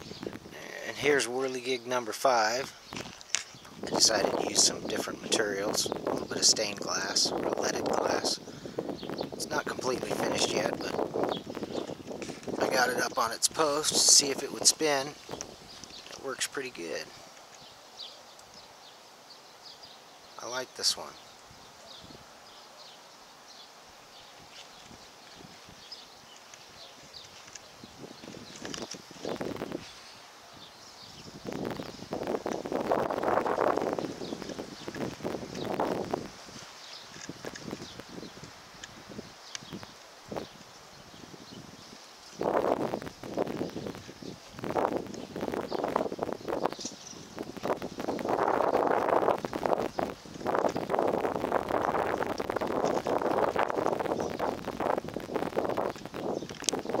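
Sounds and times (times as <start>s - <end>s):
gusting wind: 0.0s - 57.0s.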